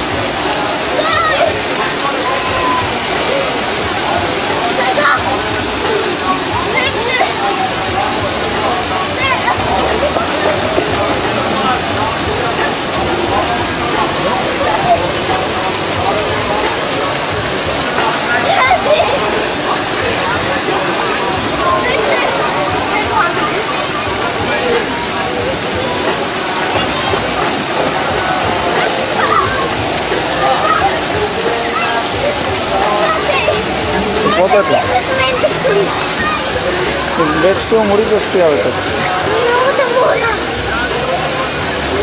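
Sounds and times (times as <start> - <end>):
crowd voices and shouts: 0.0 - 42.0
water rushing and splashing: 0.0 - 42.0.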